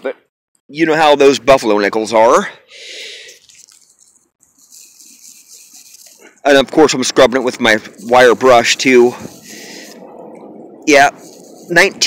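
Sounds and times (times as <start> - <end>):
wire brush scrubbing coin: 3.3 - 10.0, 11.0 - 12.0.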